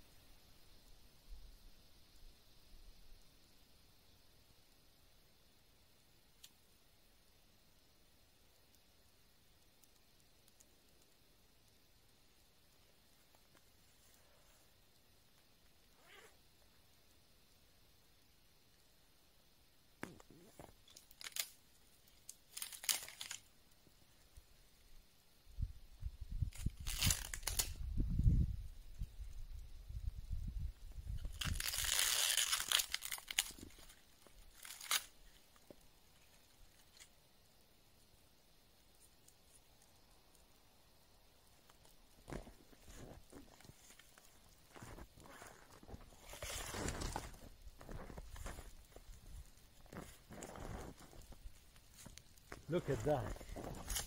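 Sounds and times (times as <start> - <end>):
dry twigs snapping: 20.0 - 23.5, 26.4 - 27.8, 31.1 - 37.1, 41.6 - 54.0
birch bark crumpling: 20.0 - 24.4, 26.4 - 28.0, 30.8 - 37.4, 38.8 - 54.0.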